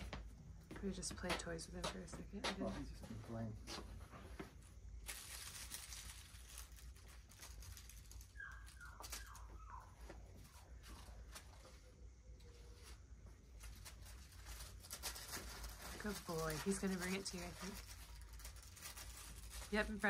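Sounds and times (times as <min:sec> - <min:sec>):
puppy scuffling on concrete: 0:00.0 - 0:20.0
faint falling squeaks: 0:07.3 - 0:11.8.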